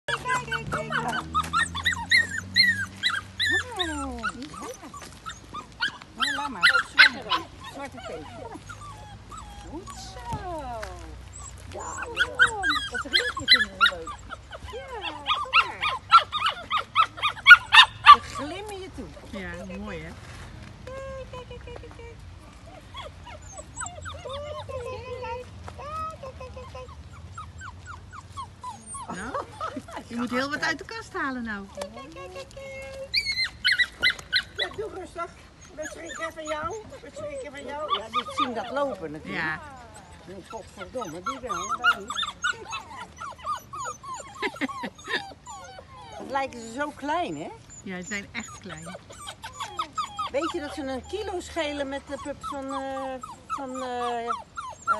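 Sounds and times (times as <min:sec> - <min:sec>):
puppy yapping: 0:00.1 - 0:10.6, 0:11.3 - 0:18.7, 0:33.1 - 0:51.4.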